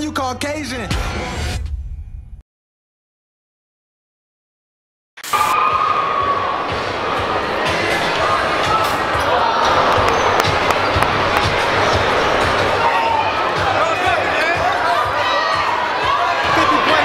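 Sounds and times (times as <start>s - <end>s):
crowd chatter: 5.4s - 17.0s.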